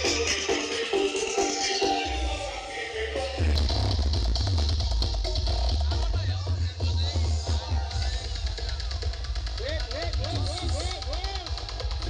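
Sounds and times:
loud music with heavy bass: 0.0 - 12.0.

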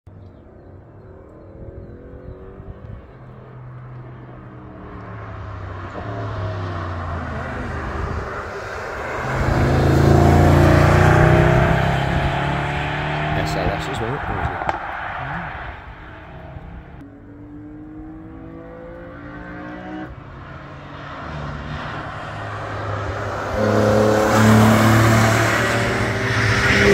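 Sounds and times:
sports car engine passing: 0.3 - 26.9.

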